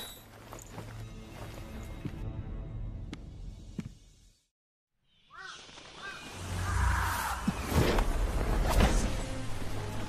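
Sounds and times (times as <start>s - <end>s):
crow cawing: 5.3s - 7.4s.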